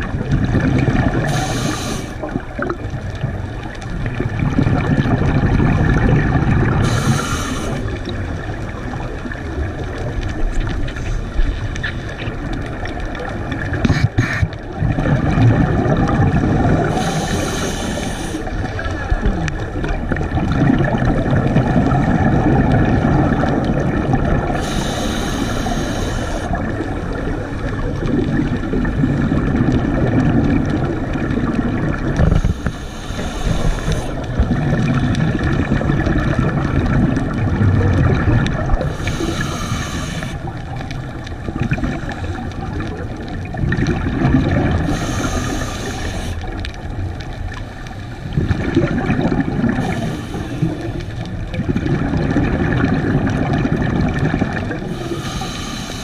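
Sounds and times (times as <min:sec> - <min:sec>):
exhaled bubbles rumbling: 0:00.0 - 0:56.0
diver breathing through regulator: 0:01.1 - 0:02.2, 0:06.7 - 0:08.1, 0:16.8 - 0:18.6, 0:24.5 - 0:26.7, 0:32.2 - 0:35.5, 0:38.7 - 0:40.6, 0:44.7 - 0:46.6, 0:49.6 - 0:51.4, 0:54.7 - 0:56.0.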